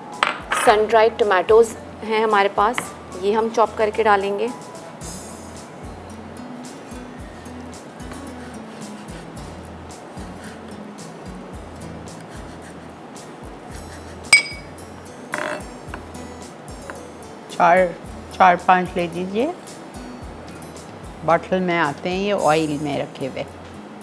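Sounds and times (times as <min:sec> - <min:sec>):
glass clink: 0:14.3 - 0:14.7.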